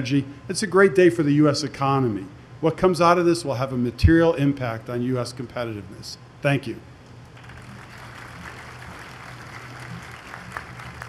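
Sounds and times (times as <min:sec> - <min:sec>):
low steady hum: 0:00.0 - 0:11.0
audience applauding: 0:07.4 - 0:11.0.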